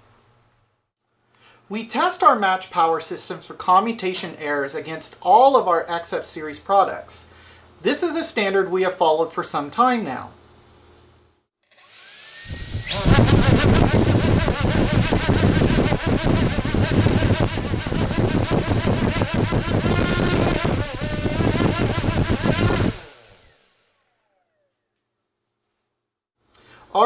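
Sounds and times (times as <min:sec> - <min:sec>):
electric motor whining: 0:11.8 - 0:24.7.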